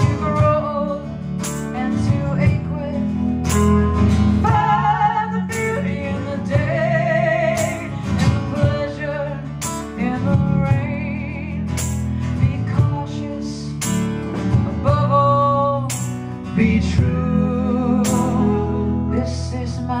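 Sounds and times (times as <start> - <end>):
woman singing: 0.0 - 3.3, 4.4 - 13.9, 14.7 - 20.0
acoustic guitar: 0.0 - 20.0
keyboard: 0.0 - 20.0.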